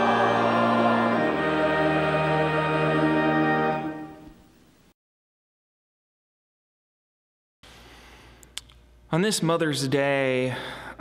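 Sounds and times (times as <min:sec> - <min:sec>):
sacred choral music: 0:00.0 - 0:04.4.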